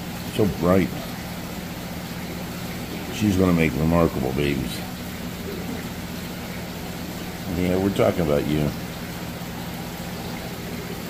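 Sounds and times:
pump humming: 0.0 - 11.0
water hissing: 0.0 - 11.0.

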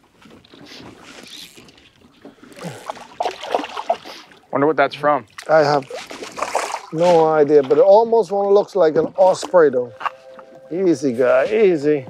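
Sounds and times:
water sloshing against boat: 0.0 - 12.0.

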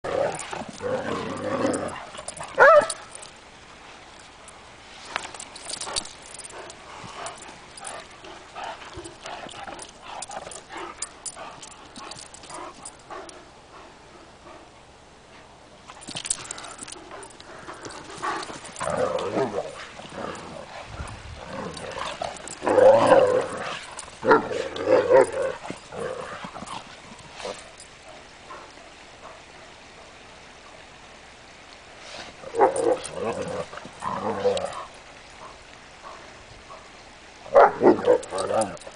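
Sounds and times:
dogs growling: 0.0 - 3.3, 5.6 - 13.5, 16.0 - 28.8, 32.2 - 36.8, 37.5 - 38.9.

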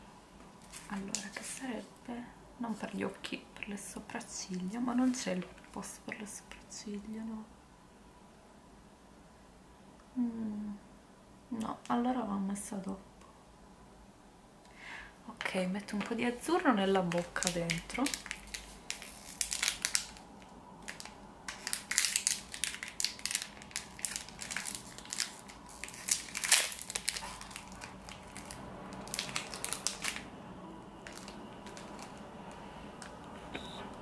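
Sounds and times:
foil pouch crinkling: 17.1 - 30.3, 31.0 - 32.3.

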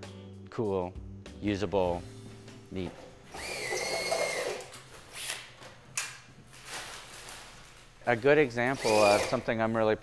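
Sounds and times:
cordless drill motor whine: 3.3 - 4.7, 8.7 - 9.5.

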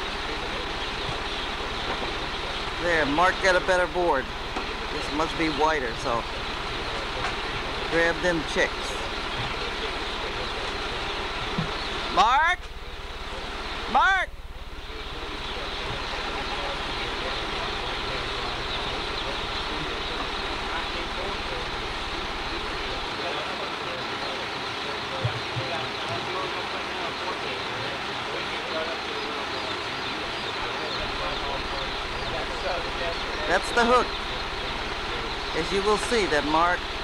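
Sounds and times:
baby chicks peeping: 0.0 - 37.0.

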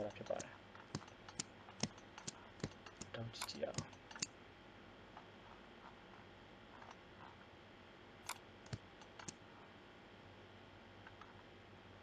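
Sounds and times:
computer mouse button clicking: 8.3 - 9.4.

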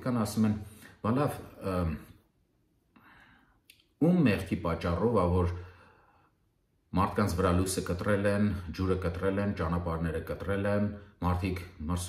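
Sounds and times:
man speaking: 0.0 - 2.3, 4.0 - 5.7, 6.9 - 12.0
faint breath: 2.9 - 3.7, 5.6 - 6.6
mouth click: 3.6 - 4.0.

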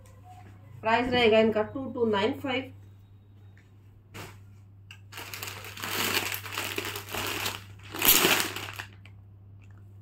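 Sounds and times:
plastic bag crinkling: 5.0 - 9.1.

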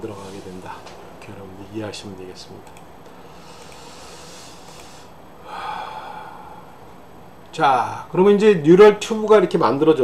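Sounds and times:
man breathing: 3.1 - 6.9.

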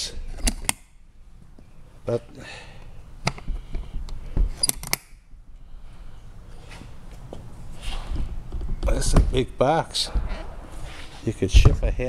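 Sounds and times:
metallic latch clicks: 4.6 - 5.2
low handling rumble: 8.4 - 12.0.

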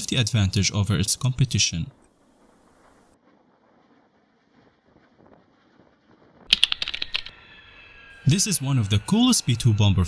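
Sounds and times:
rapid sharp clicks: 6.5 - 7.4
faint steady high tones: 6.6 - 10.0.

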